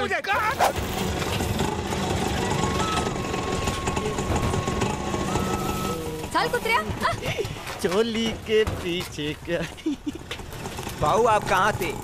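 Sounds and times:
auto-rickshaw engine idling: 0:00.0 - 0:12.0.

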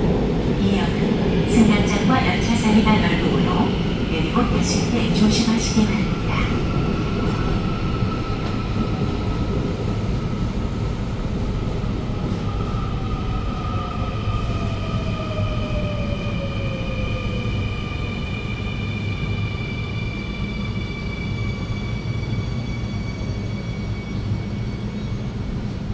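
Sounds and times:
train wheels rumbling on rail: 0:00.0 - 0:25.9.

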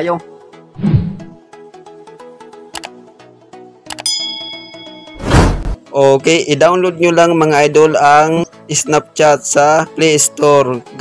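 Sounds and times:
soft background music: 0:00.0 - 0:11.0
bright bell ding: 0:04.0 - 0:05.2.

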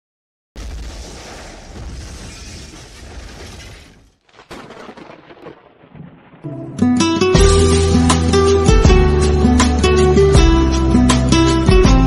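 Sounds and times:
sharp crack: 0:00.6 - 0:08.5.

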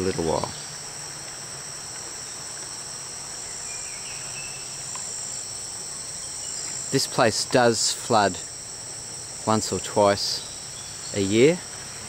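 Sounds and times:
insects chirping shrilly: 0:00.0 - 0:12.0.

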